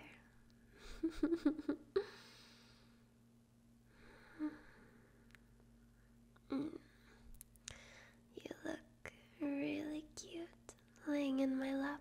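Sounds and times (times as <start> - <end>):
woman whispering: 0.0 - 0.3, 8.4 - 12.0.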